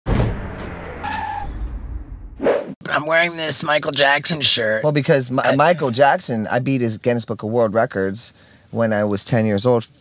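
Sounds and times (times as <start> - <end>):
vehicle tires skidding: 0.1 - 2.1
high tire squeal: 0.6 - 1.7.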